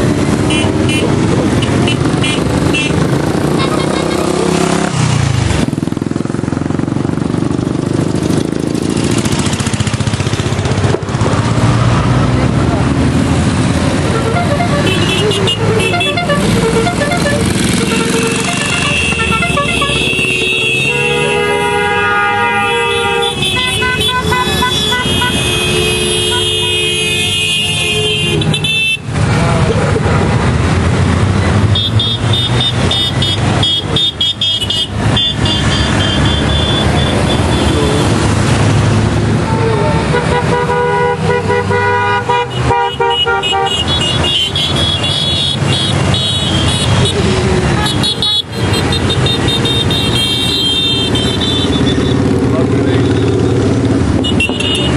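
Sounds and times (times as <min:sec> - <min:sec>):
motorcycle horns tooting: 0:00.0 - 0:07.3, 0:13.4 - 0:29.3, 0:31.6 - 0:38.5, 0:39.3 - 0:54.9
motorcycles riding past: 0:00.0 - 0:27.5, 0:28.4 - 0:40.6, 0:43.9 - 0:54.9.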